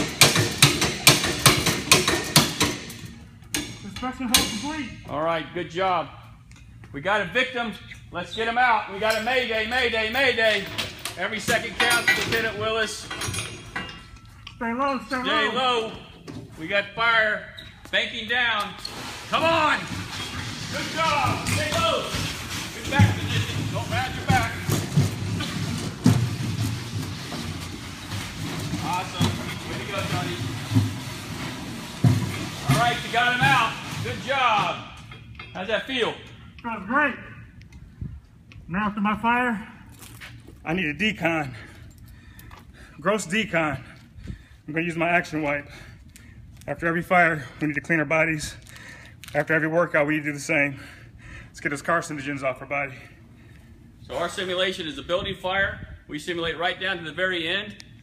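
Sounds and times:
sled scraping on concrete: 18.9 - 34.9.

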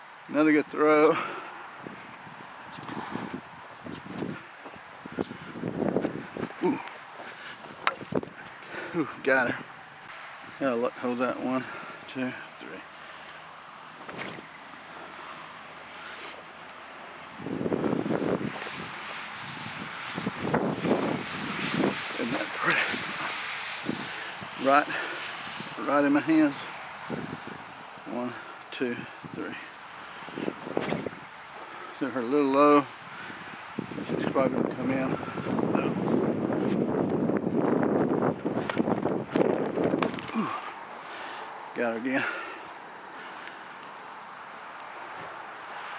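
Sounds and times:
wind buffeting microphone: 1.1 - 12.0, 16.7 - 43.4.

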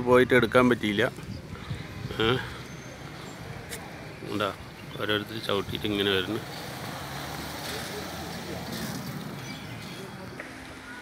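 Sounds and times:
faint voices: 0.0 - 11.0
outdoor background noise: 0.0 - 11.0.

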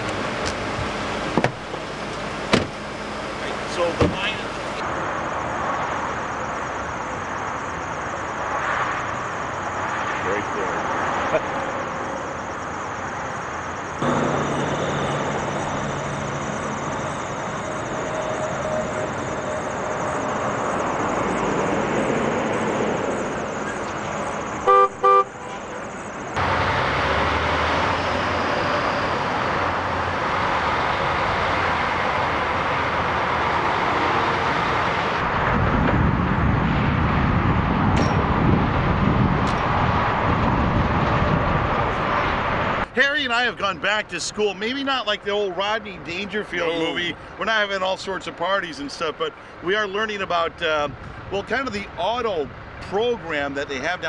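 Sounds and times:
diesel truck engine rumbling: 0.0 - 54.0
vehicle engines and road noise: 0.0 - 54.0
short horn blasts: 24.6 - 25.7.

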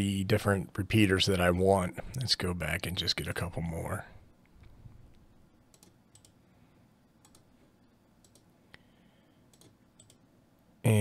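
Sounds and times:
faint computer mouse clicks: 5.7 - 6.4, 7.2 - 7.5, 8.2 - 8.9, 9.5 - 10.2.

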